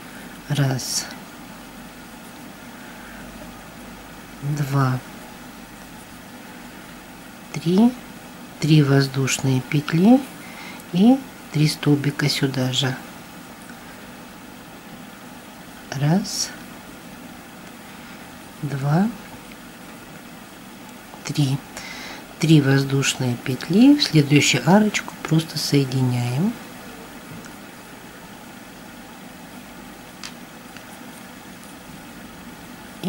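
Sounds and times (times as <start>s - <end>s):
room hum: 0.0s - 33.0s
person speaking: 0.4s - 1.3s, 4.4s - 5.2s, 7.5s - 13.1s, 15.9s - 16.7s, 18.6s - 19.3s, 21.2s - 21.8s, 22.4s - 26.6s.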